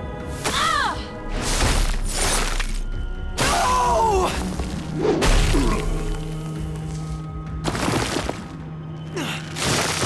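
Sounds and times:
dramatic orchestral music: 0:00.0 - 0:10.0.

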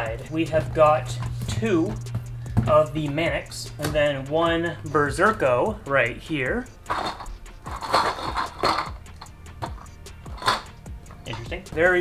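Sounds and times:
background music with a beat: 0:00.0 - 0:12.0.

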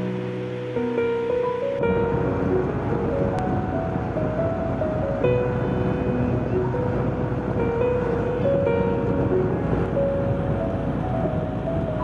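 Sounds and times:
road and wind noise: 0:00.0 - 0:12.0
song melody: 0:00.0 - 0:12.0.

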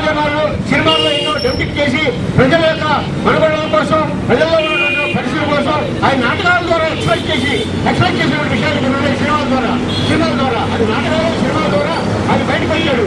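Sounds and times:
man speaking into a microphone: 0:00.0 - 0:13.0.

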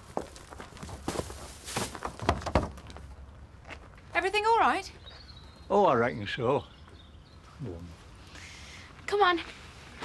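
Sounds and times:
footsteps: 0:00.0 - 0:04.0.

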